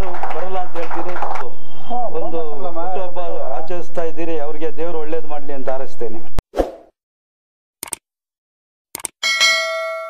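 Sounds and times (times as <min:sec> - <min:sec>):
mouse clicks: 0:09.0 - 0:09.2
bell ding: 0:09.2 - 0:10.0.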